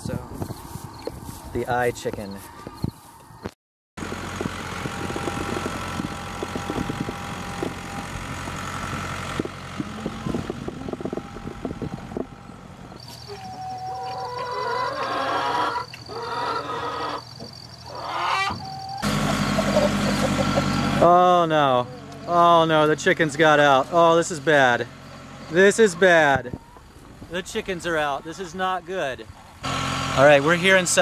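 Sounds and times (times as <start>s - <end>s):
tractor engine running: 4.0s - 13.3s, 19.0s - 31.0s
hens clucking: 13.0s - 22.6s, 25.5s - 27.1s.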